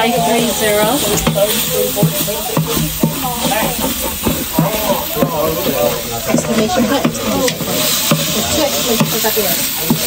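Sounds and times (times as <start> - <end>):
paste sizzling in a pot: 0.0 - 10.0.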